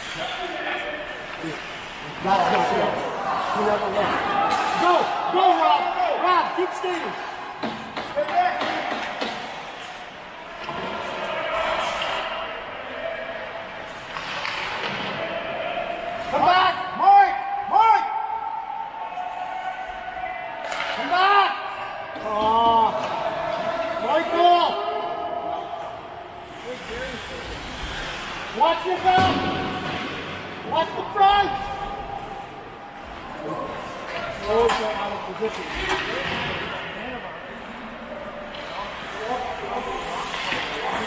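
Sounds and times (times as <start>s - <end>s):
players shouting: 0.0s - 26.4s.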